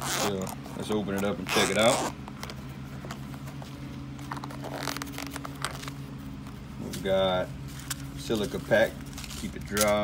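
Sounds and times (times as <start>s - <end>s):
zipper being pulled open: 0.0s - 0.6s, 1.4s - 2.2s, 4.3s - 5.9s
steady low hum: 0.0s - 10.0s.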